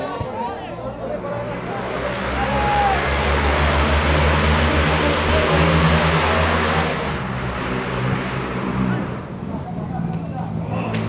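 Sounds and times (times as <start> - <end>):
low engine hum: 0.2 - 11.0.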